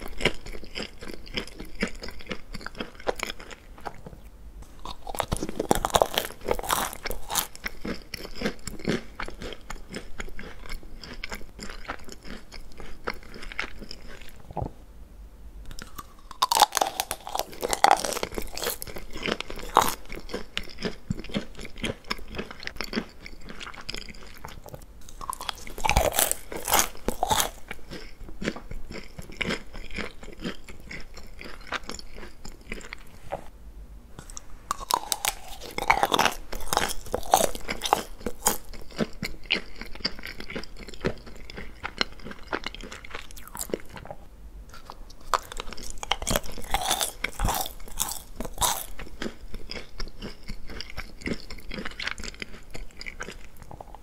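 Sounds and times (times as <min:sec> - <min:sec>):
soft chewing: 0:00.0 - 0:14.8, 0:15.7 - 0:33.5, 0:34.2 - 0:54.0
chocolate shell crunching: 0:04.7 - 0:14.4, 0:15.7 - 0:33.1, 0:34.2 - 0:44.1, 0:44.7 - 0:54.0.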